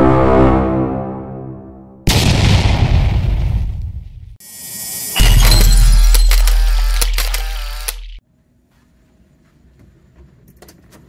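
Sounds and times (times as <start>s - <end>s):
rising swell: 0.0s - 2.0s
sharp clicks: 5.5s - 8.2s.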